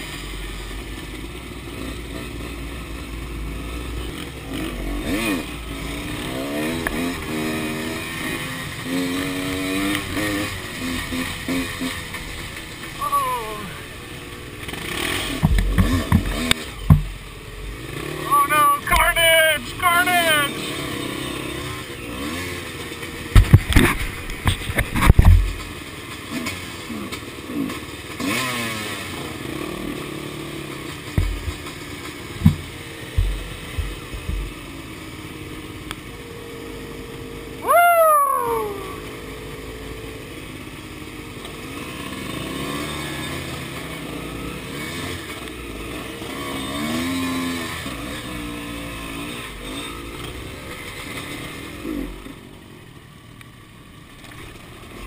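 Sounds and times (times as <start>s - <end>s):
dirt bike engines revving: 0.0s - 55.0s
loud knocks: 31.2s - 31.6s, 32.4s - 34.5s.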